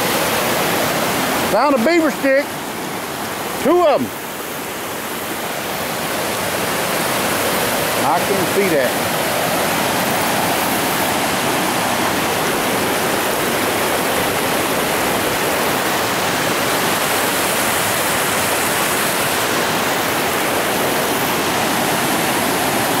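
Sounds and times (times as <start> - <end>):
river water rushing over rocks: 0.0 - 23.0.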